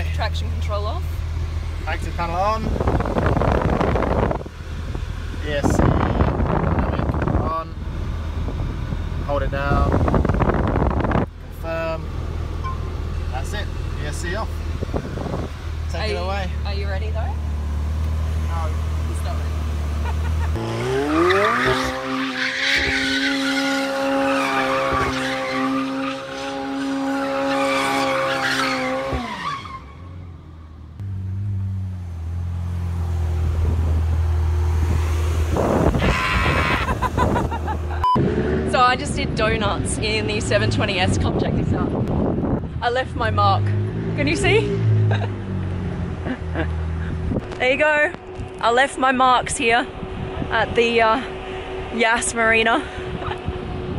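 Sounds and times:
car engine idling and revving: 0.0s - 53.9s
tyres squealing: 20.1s - 30.4s, 35.9s - 37.3s.

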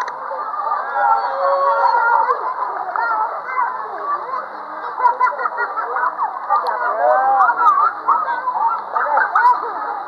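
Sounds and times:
children shouting and squealing: 0.0s - 10.0s.

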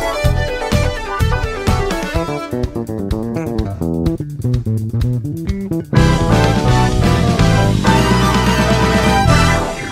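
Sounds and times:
bass guitar plucked notes: 0.3s - 9.9s.

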